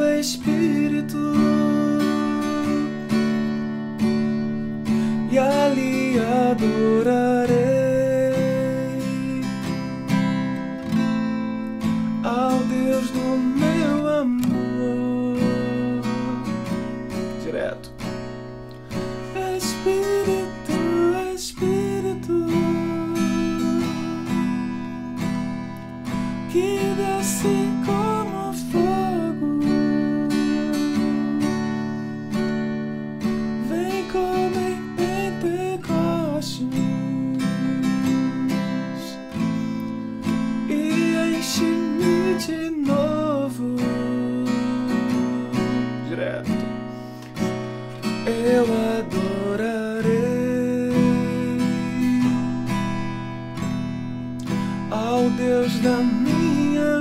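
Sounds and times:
man singing: 0:00.0 - 0:03.3, 0:04.9 - 0:10.5, 0:12.2 - 0:16.7, 0:19.2 - 0:24.9, 0:26.5 - 0:32.0, 0:33.6 - 0:39.6, 0:40.6 - 0:46.7, 0:48.0 - 0:53.2, 0:54.4 - 0:57.0
acoustic guitar strumming: 0:00.0 - 0:57.0.

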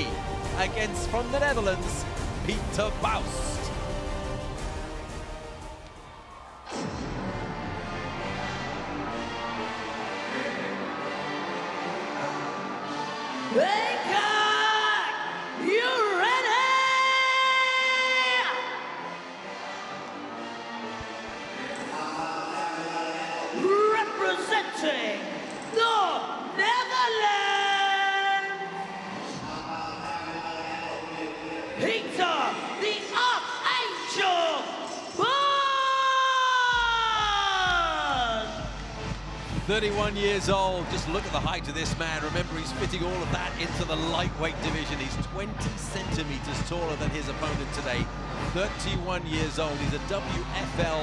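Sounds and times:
announcer's amplified voice: 0:00.0 - 0:03.8, 0:39.6 - 0:51.0
crowd noise: 0:00.0 - 0:51.0
music: 0:00.0 - 0:51.0.

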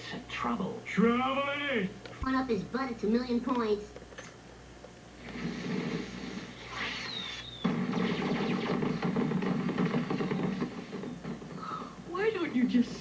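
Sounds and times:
soft hiss with falling whistle: 0:06.7 - 0:08.4
firecrackers crackling pops: 0:06.8 - 0:11.6.

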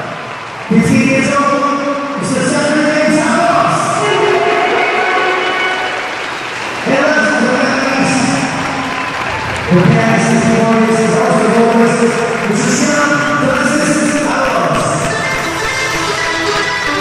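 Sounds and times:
crowd applause: 0:00.0 - 0:01.5, 0:02.5 - 0:17.0
keyboard chords: 0:03.1 - 0:17.0.

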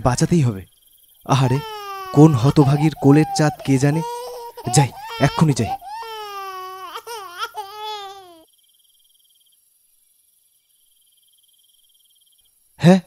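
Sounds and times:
faint crickets chirping: 0:00.0 - 0:13.0
newborn baby crying: 0:01.3 - 0:08.4.

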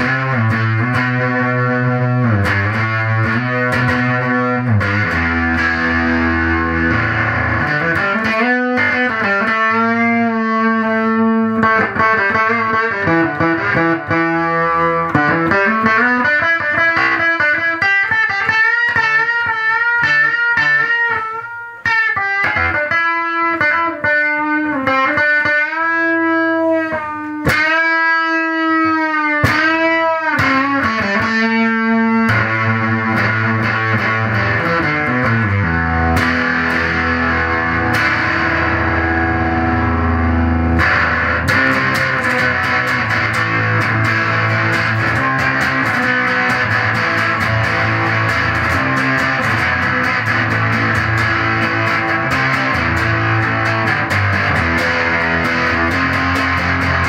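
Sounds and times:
fuzzy electric guitar: 0:00.0 - 0:57.0.

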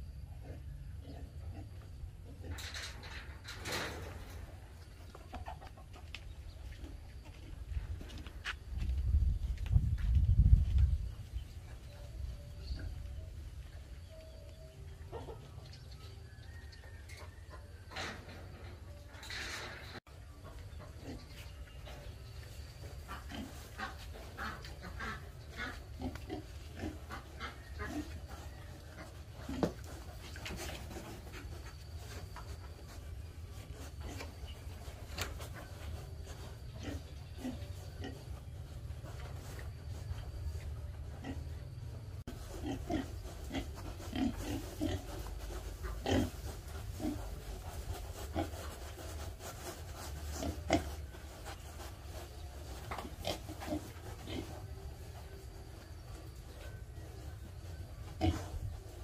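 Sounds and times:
young pigs grunting: 0:00.2 - 0:02.8, 0:22.8 - 0:31.3, 0:36.6 - 0:38.5, 0:42.4 - 0:49.0, 0:52.8 - 0:54.8, 0:57.7 - 0:59.0.

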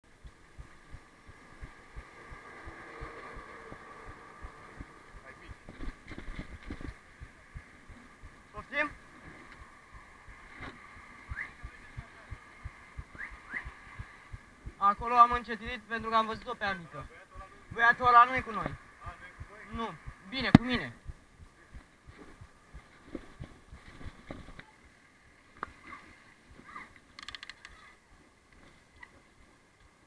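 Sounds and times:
dull low thumps: 0:00.0 - 0:24.5
faint steady hum: 0:00.0 - 0:30.0.

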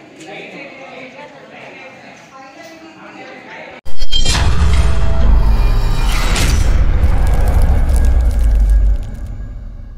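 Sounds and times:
deep rumble: 0:04.3 - 0:09.9
crackling sparks: 0:05.8 - 0:09.9.

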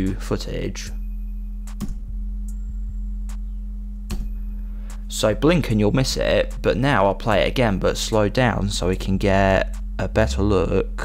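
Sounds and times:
low drone: 0:00.8 - 0:11.0
sharp ticking hits: 0:00.8 - 0:11.0.

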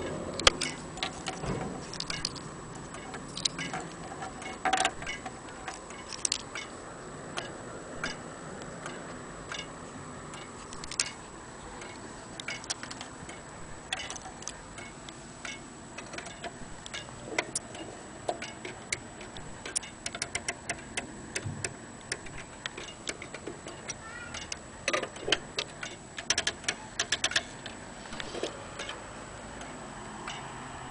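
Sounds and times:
rapid ratchet clicks: 0:00.4 - 0:06.7, 0:08.8 - 0:27.8
wall clock ticking: 0:07.4 - 0:27.8.

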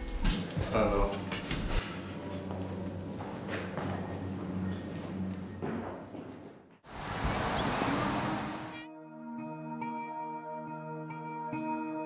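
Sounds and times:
wind on microphone: 0:06.9 - 0:08.8.

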